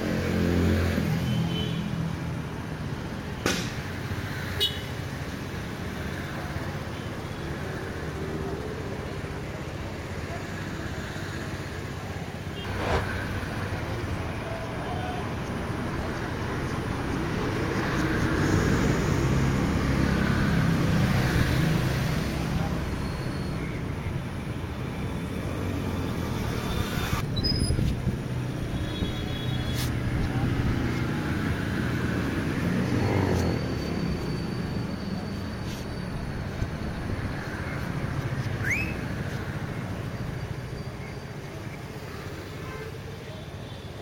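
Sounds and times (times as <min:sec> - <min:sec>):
vehicles and motorbikes passing: 0:00.0 - 0:44.0.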